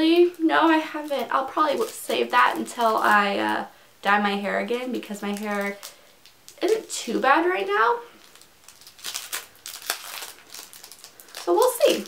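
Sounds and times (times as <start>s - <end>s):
packaging crinkling: 0.1s - 3.6s, 4.8s - 7.0s, 8.1s - 12.0s.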